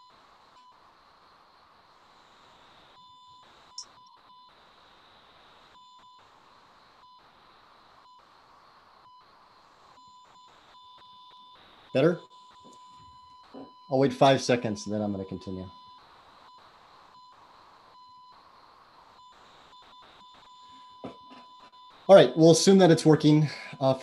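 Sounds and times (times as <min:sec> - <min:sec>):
faint steady hiss: 0:00.0 - 0:24.0.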